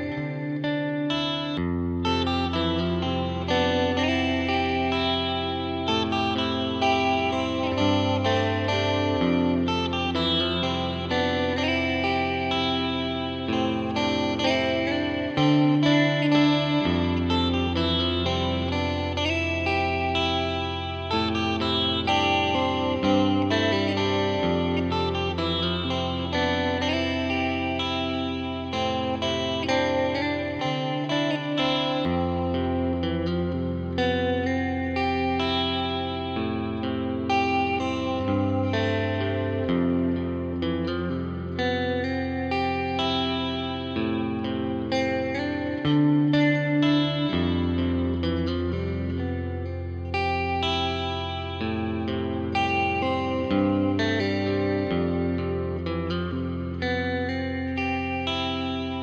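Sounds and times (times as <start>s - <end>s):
clean electric guitar picking: 0.0s - 59.0s.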